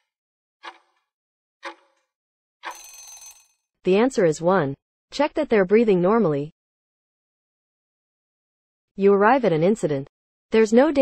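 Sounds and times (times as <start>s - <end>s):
short bell-like ringing: 2.7s - 3.5s.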